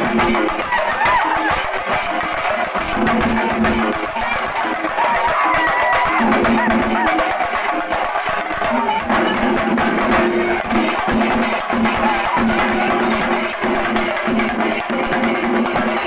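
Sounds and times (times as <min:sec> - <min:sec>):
drums beaten fast: 0:00.0 - 0:16.0.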